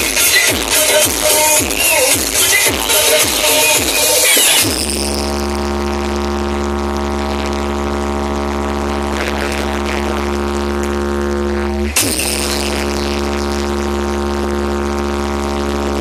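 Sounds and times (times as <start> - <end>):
heavy bass drone: 0.0 - 16.0
loud music from speakers: 0.0 - 16.0.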